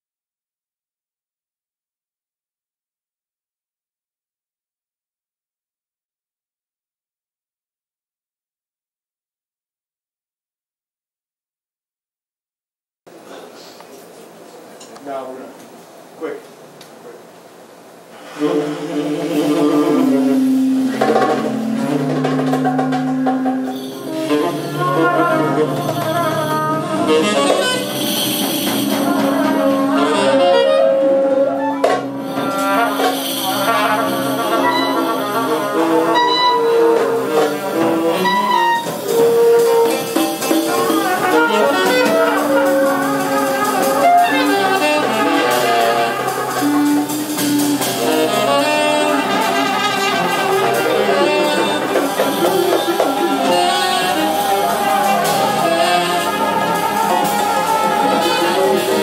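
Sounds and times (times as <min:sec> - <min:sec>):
saxophone and wind instruments playing: 0:18.2 - 0:59.0
hand percussion: 0:19.0 - 0:59.0.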